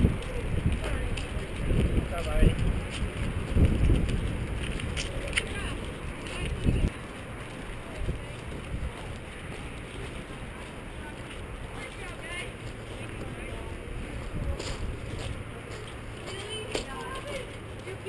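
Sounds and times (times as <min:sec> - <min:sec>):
wind rumble on microphone: 0:00.0 - 0:17.9
faint distant voices: 0:04.8 - 0:18.0.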